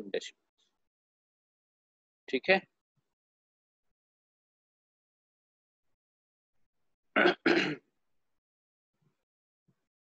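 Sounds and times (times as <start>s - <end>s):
person clearing throat: 7.1s - 7.9s
short coughs: 7.2s - 7.9s.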